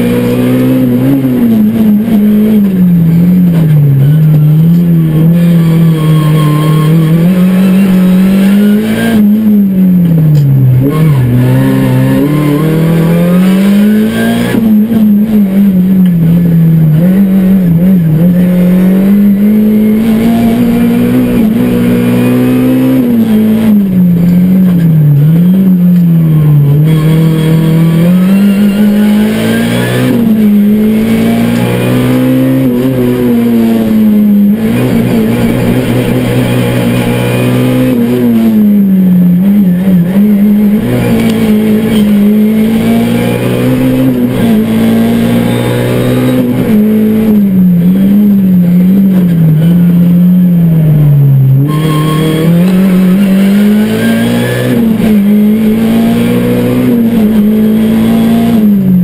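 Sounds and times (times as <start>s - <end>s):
race car engine revving: 0.0s - 59.0s.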